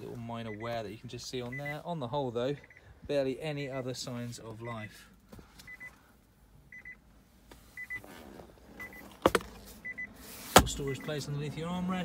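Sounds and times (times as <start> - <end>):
car warning chime short beeps: 0.3 - 2.9, 8.8 - 9.1, 9.8 - 12.0.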